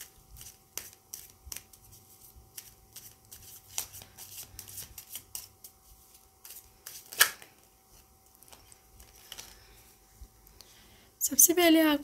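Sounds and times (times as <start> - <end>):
cards shuffled by hand: 0.0 - 9.8.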